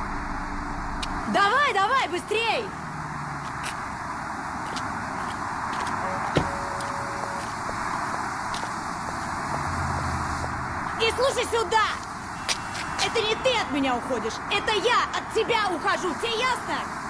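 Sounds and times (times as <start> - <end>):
city street traffic: 0.0 - 17.0.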